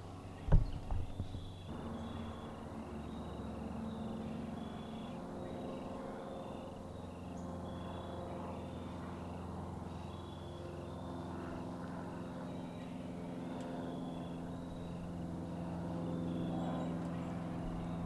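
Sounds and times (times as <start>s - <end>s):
low engine-like drone: 0.0s - 18.0s
insects chirping: 1.0s - 8.2s.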